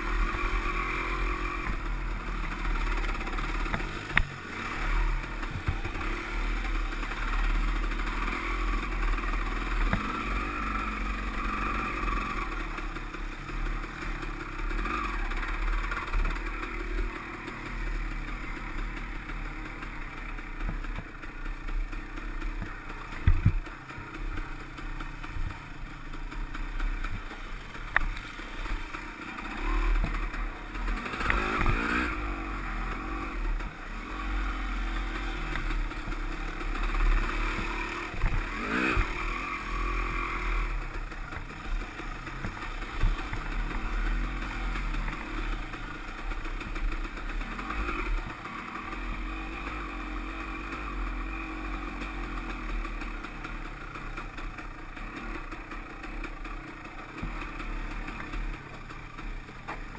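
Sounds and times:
dirt bike engine revving: 0.0s - 59.9s
bike knocking and clattering: 22.5s - 24.3s.

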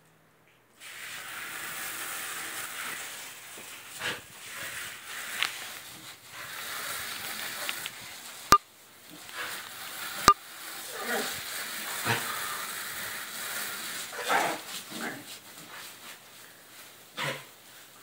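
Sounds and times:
hose spray hissing on plastic: 0.8s - 18.0s.

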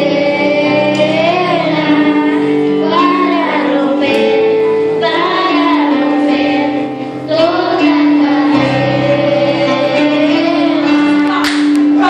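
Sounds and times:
children's choir singing: 0.0s - 12.0s
instrumental accompaniment: 0.0s - 12.0s
woman singing into microphone: 0.0s - 12.0s.

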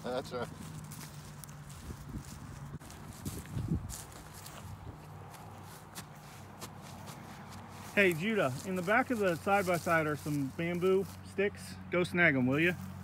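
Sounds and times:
footsteps on dry grass: 0.0s - 13.0s.

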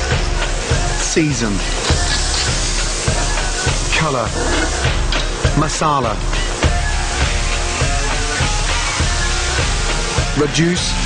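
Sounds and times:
background music with steady beat: 0.0s - 11.0s
mushrooms sizzling in frying pan: 0.5s - 5.6s.

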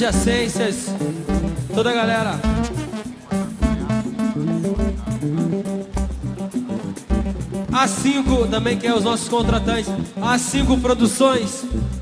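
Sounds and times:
bass guitar: 0.0s - 12.0s
guitar notes: 0.0s - 12.0s
steady drum beat: 0.0s - 12.0s.

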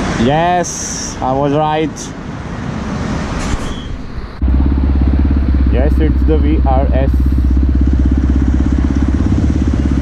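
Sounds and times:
traffic rushing past: 0.0s - 10.0s
motorcycle engine running: 4.4s - 10.0s.

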